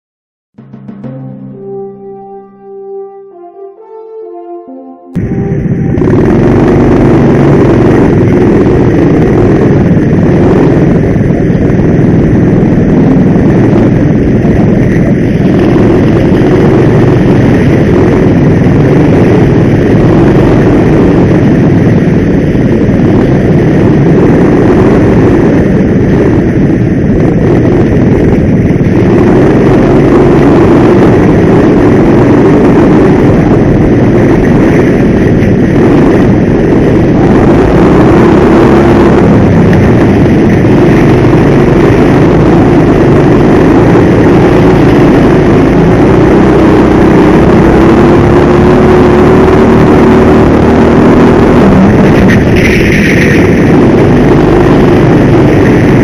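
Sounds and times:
go-kart engine running: 5.2 - 56.0.

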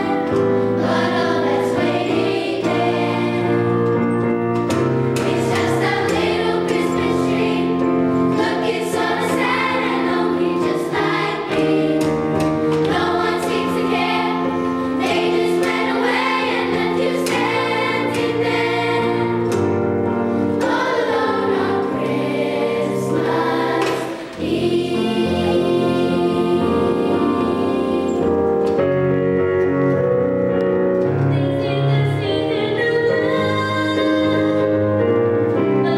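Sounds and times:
children's choir singing: 0.0 - 28.8
low instrumental accompaniment: 0.0 - 35.9.

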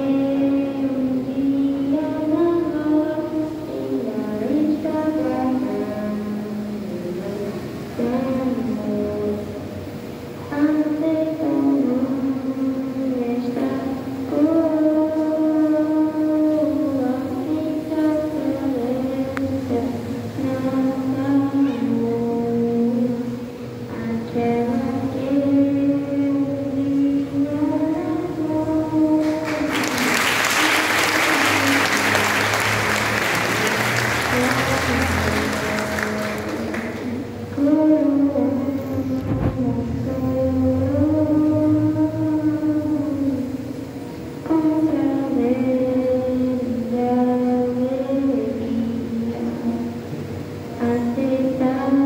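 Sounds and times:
congregation singing a hymn: 27.8 - 37.3.

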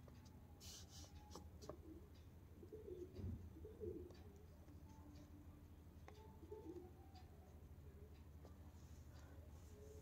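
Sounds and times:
brush dabs on paper: 0.6 - 1.4.

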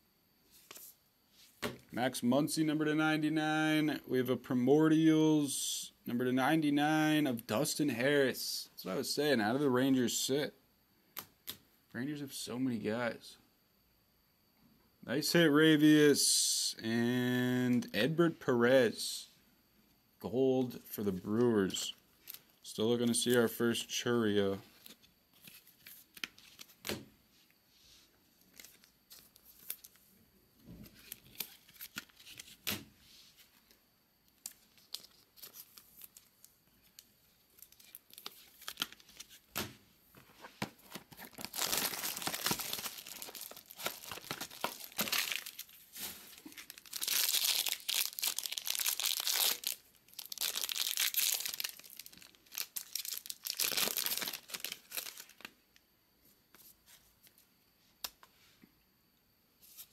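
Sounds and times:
crinkly wrapping being torn: 36.9 - 39.4, 40.8 - 55.5.

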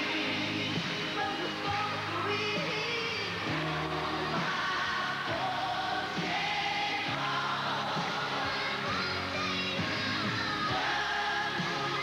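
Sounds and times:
backing music: 0.0 - 12.0
children singing: 3.5 - 12.0.

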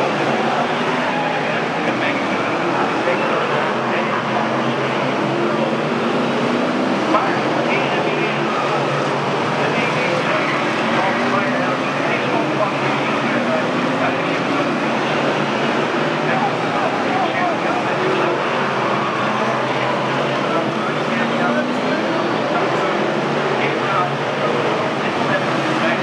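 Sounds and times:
indistinct voices: 0.0 - 26.0
racing car engines: 0.0 - 26.0.

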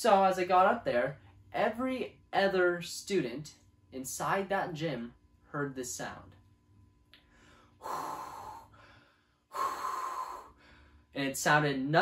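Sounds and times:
person breathing deeply: 7.2 - 11.2.

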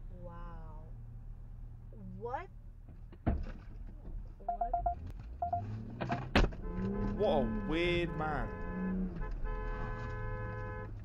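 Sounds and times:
short electronic beeps: 4.5 - 5.7.

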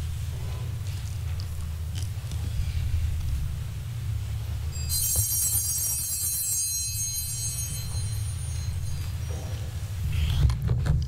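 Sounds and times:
low hum: 0.0 - 10.5
small high-pitched bell ringing: 4.6 - 9.9.

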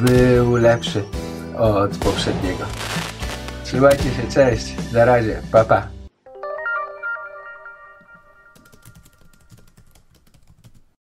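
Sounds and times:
chiming musical jingle: 6.3 - 9.6
computer keyboard typing: 8.1 - 11.0.

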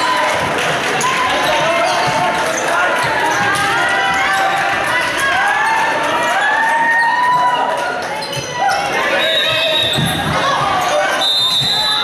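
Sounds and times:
crowd chatter and shouts: 0.0 - 12.0
sneakers squeaking on court floor: 7.9 - 12.0
thuds of footsteps and ball: 9.6 - 10.8.

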